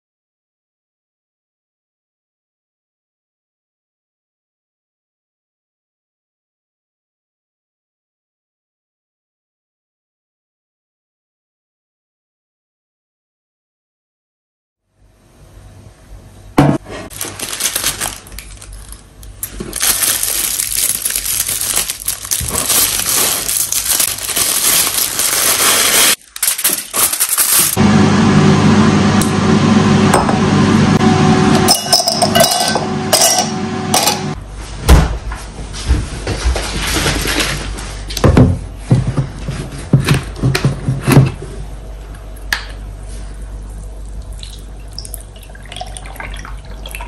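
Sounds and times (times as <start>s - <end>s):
low steady hum: 15.0s - 47.0s
plastic wrapper crinkling: 17.1s - 27.8s.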